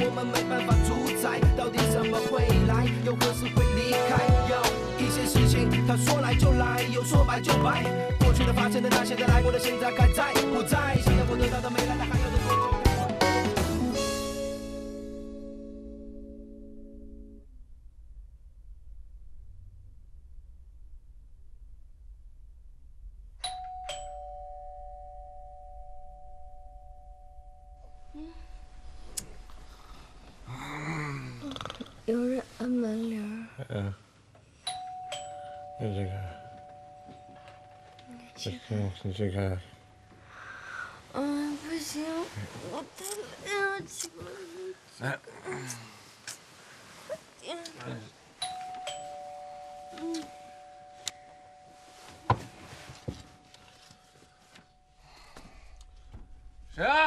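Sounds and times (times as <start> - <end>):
two-tone doorbell chime: 23.4 - 28.1, 34.7 - 38.5, 48.4 - 54.1.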